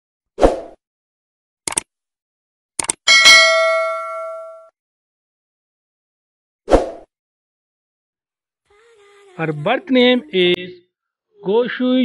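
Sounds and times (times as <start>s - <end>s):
bright bell ding: 3.1s - 4.7s.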